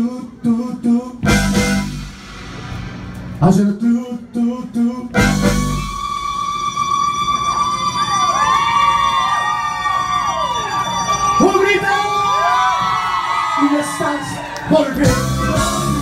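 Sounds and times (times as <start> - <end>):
band holding sustained note: 1.3 - 8.6
siren-like swoops: 5.2 - 8.6.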